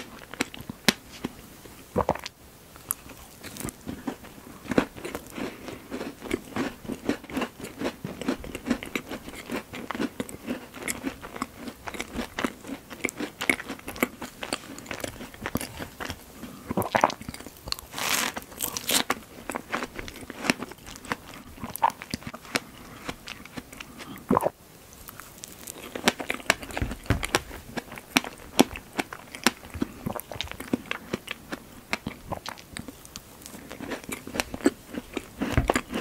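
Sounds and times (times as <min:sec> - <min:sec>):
chewing with mouth clicks: 0:02.0 - 0:17.9, 0:18.5 - 0:24.5, 0:25.1 - 0:36.0.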